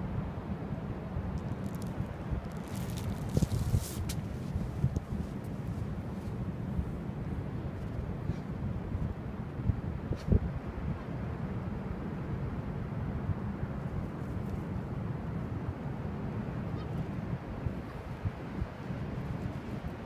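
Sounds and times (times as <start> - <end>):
wind buffeting microphone: 1.2 - 11.0
rustling hiss: 1.4 - 5.7.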